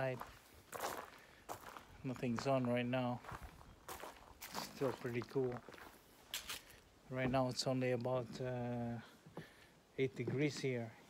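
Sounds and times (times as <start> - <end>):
footsteps on gravel: 0.0 - 8.5.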